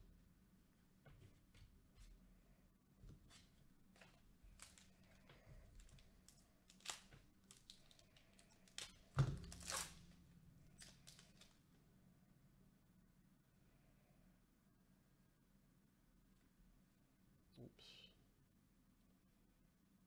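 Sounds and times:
foil wrapper crinkling: 4.0 - 11.6.

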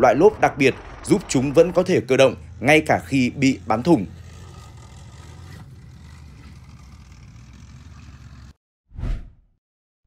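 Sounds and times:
tracked vehicle engine running: 0.0 - 8.6.

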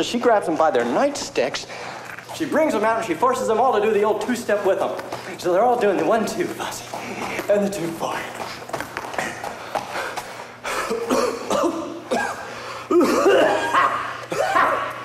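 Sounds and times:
steady low hum: 0.0 - 15.0
man scatting vocal sounds: 4.7 - 12.0
cough-like breaths: 9.2 - 14.6.

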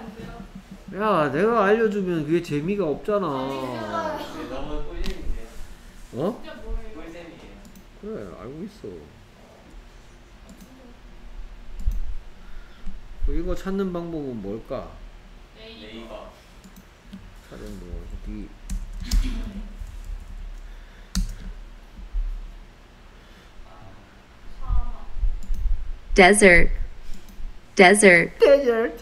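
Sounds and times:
computer mouse clicking: 21.1 - 21.5.

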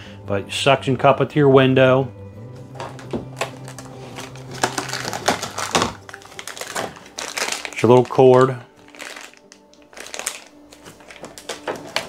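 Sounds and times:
plastic bag crinkling: 2.8 - 12.0.

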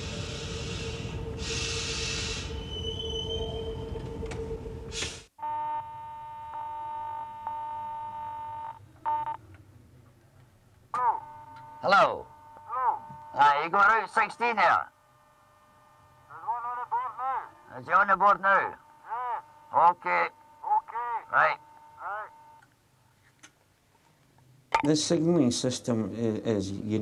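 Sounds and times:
train rumbling through tunnel: 0.0 - 5.3
steady electric signal tone: 0.0 - 9.4, 10.9 - 22.7.

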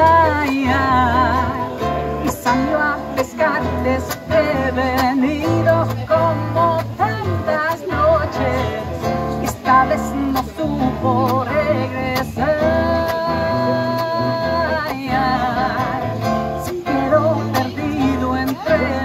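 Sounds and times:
nylon-string guitar strummed: 0.0 - 19.0
woman singing: 0.0 - 19.0.

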